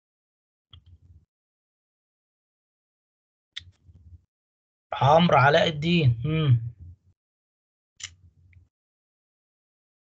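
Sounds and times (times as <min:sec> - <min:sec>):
man speaking: 0:05.0 - 0:06.8.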